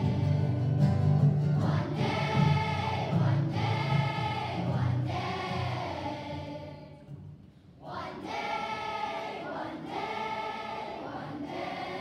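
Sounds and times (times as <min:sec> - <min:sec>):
children's choir singing: 0:00.0 - 0:00.8, 0:01.5 - 0:07.1, 0:07.8 - 0:12.0.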